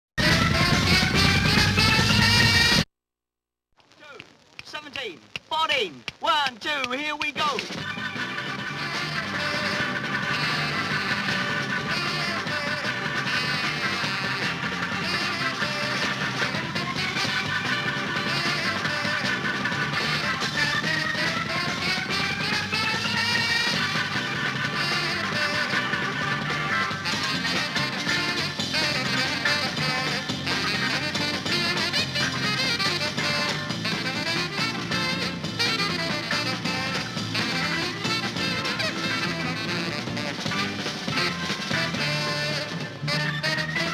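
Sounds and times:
guitar: 0.2 - 2.8, 6.8 - 43.9
jazz-rock band playing: 0.2 - 2.8, 7.7 - 43.9
drums and cymbals: 5.3 - 43.9
saxophone melody: 7.9 - 43.9.

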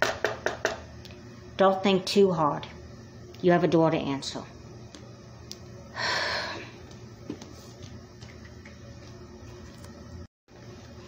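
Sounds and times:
person breathy sigh: 5.9 - 6.8.

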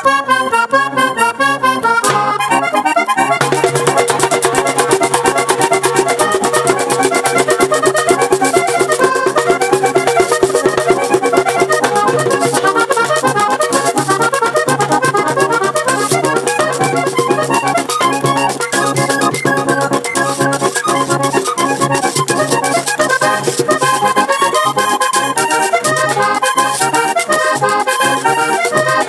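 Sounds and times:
button accordion playing: 0.0 - 29.0
rapid steady percussion: 2.0 - 29.0.

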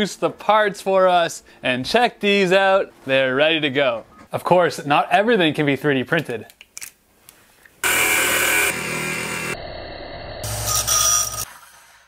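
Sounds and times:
disc sander grinding metal rod: 7.8 - 9.6
bench power tools working metal: 7.8 - 11.5.

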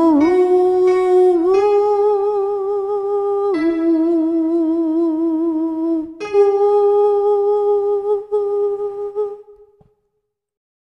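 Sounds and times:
alto voice singing with vibrato: 0.0 - 9.9.

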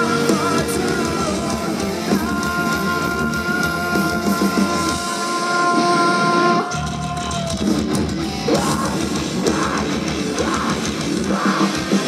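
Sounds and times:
bass and drums: 0.0 - 12.0.

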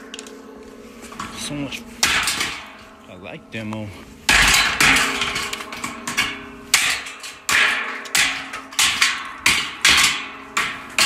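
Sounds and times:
hammer striking metal drum: 4.3 - 11.0.

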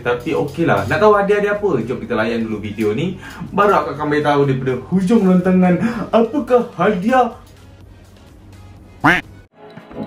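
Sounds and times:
background music: 0.0 - 10.0
quack-like call: 9.0 - 9.3.

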